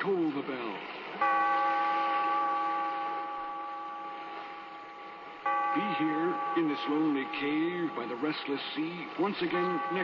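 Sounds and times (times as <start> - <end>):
tolling bell: 1.2 - 10.0.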